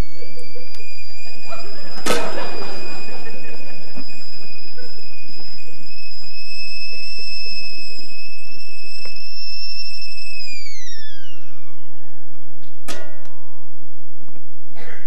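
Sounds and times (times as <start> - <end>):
kettle whistling: 0.0 - 12.3.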